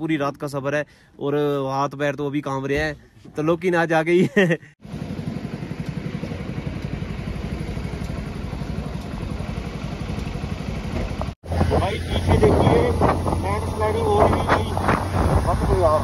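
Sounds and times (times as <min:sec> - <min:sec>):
vehicle engine pulsing: 0:04.8 - 0:16.0
voices talking: 0:11.5 - 0:16.0.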